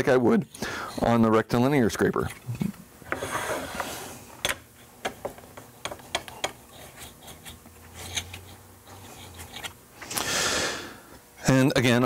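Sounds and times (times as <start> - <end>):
steel scraping on sharpening stone: 6.7 - 9.7.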